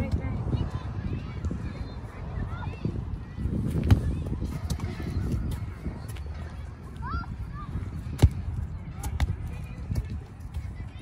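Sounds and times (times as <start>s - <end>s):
soccer ball kick thuds: 3.6s - 6.1s, 7.9s - 10.8s.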